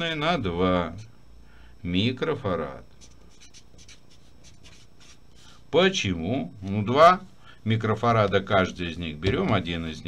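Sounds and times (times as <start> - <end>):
marker writing on paper: 3.0 - 5.4.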